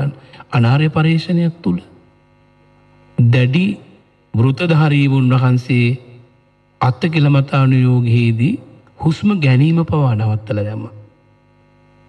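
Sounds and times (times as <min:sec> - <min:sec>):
man speaking: 0:00.0 - 0:02.0, 0:03.2 - 0:11.1
faint mains hum: 0:00.0 - 0:12.0.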